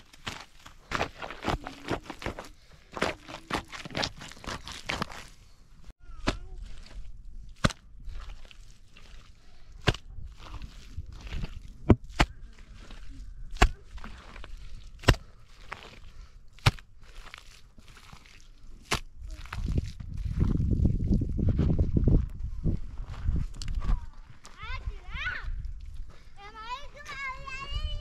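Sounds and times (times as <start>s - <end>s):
hands squelching wet mud: 0.0s - 5.6s, 6.2s - 21.4s.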